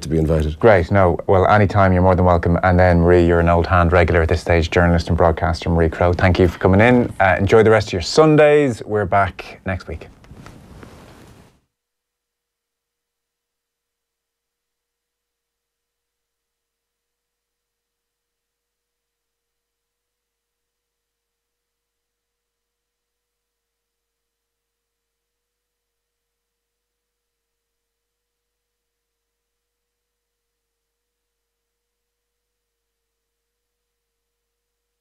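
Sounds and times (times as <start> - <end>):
faint steady tone: 12.3 - 35.0.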